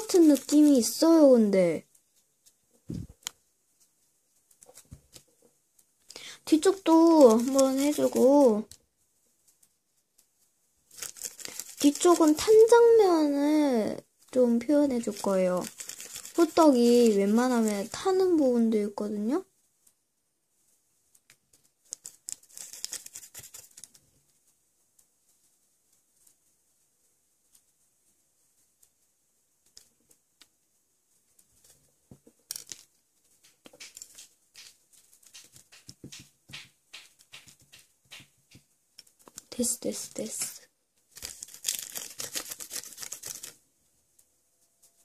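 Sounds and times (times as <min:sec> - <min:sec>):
paintbrush scratching on clay: 0:00.0 - 0:05.9, 0:06.5 - 0:08.7
brush bristles rubbing on paper: 0:00.0 - 0:30.3, 0:32.9 - 0:43.6.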